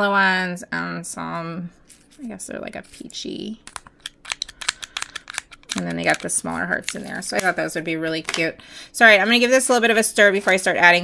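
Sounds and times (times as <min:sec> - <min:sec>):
person speaking: 0:01.3 - 0:09.6.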